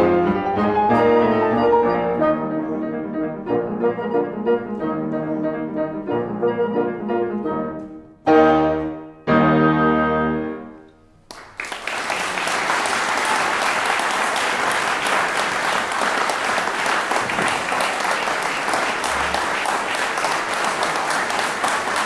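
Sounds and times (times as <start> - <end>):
audience applauding: 11.2 - 22.0.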